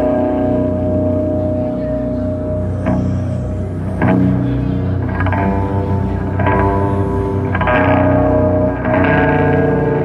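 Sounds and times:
distorted electric guitar chords: 0.0s - 10.0s.

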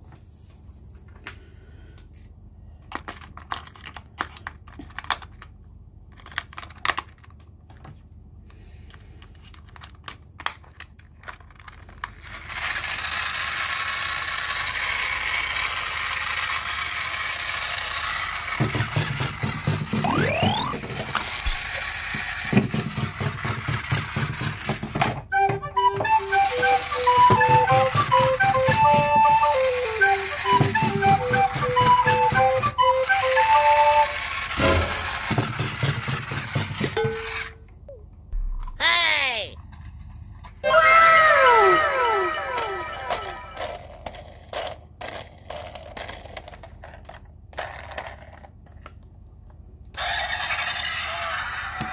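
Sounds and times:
plastic wheels clattering: 2.8s - 8.0s, 8.8s - 37.6s, 42.6s - 49.1s
toy train motor whirring: 8.6s - 37.6s, 40.5s - 48.9s, 49.9s - 51.9s
electronic beeping tune: 20.0s - 20.8s.

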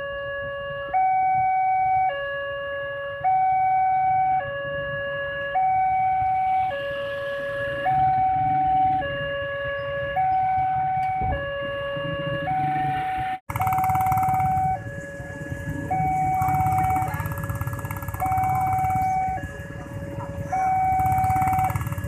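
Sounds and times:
level crossing two-tone alarm: 12.5s - 22.0s.

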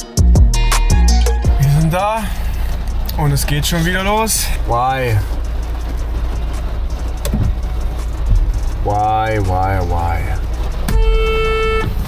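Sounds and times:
van engine rumbling: 0.0s - 12.0s
light rain on windshield: 1.6s - 12.0s.

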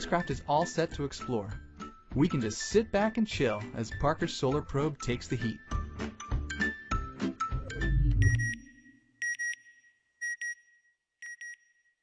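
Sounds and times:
music track: 2.2s - 9.1s
electronic double beeps: 7.7s - 8.9s.

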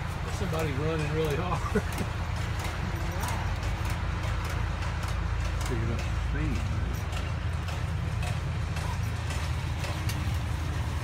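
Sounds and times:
minibus engine idling: 0.0s - 11.0s.

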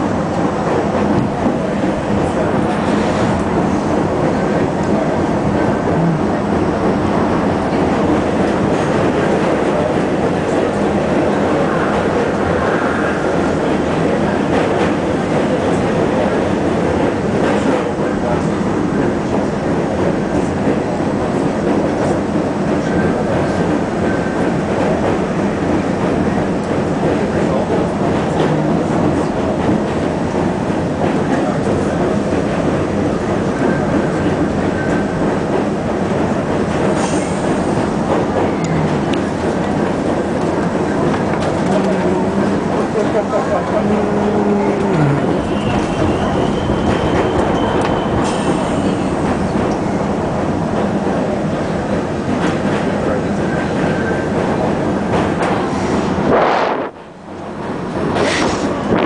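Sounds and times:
subway train wheels rumbling: 0.0s - 59.0s.

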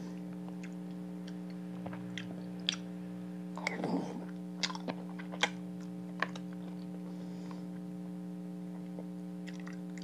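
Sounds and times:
steady electrical hum: 0.0s - 10.0s.

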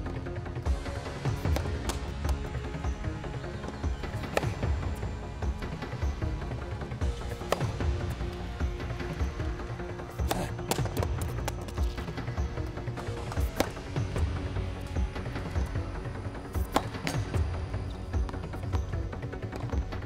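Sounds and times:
background music: 0.0s - 20.0s.

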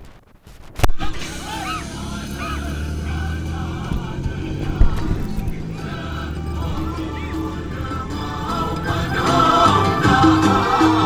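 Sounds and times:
camels running on sand: 0.0s - 11.0s
low engine rumble: 1.0s - 11.0s
short high calls: 1.1s - 3.0s.

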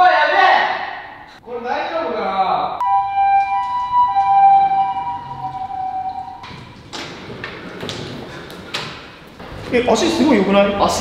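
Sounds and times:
steady electronic two-pitch tone: 2.8s - 6.4s
sliding door rattling open: 6.4s - 11.0s.

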